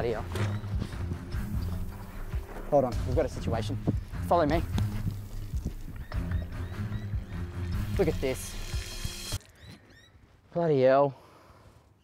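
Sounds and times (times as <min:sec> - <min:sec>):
footsteps running on grass: 0:00.0 - 0:06.6.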